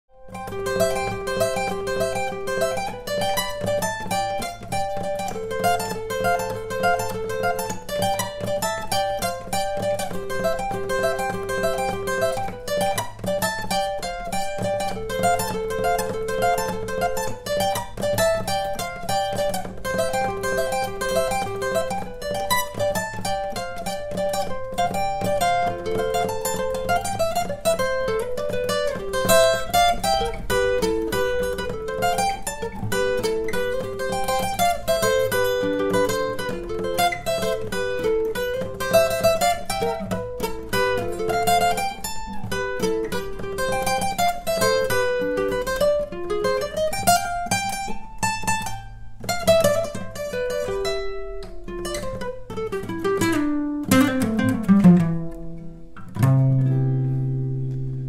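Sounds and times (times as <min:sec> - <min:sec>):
fast acoustic guitar arpeggios: 0:00.1 - 0:58.0.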